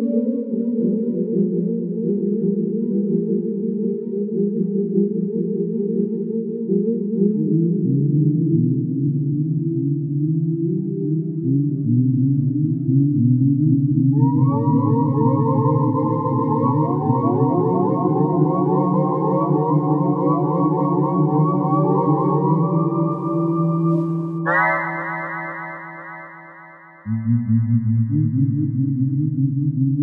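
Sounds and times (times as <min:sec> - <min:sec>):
synthesizer droning chords: 0:21.0 - 0:27.8.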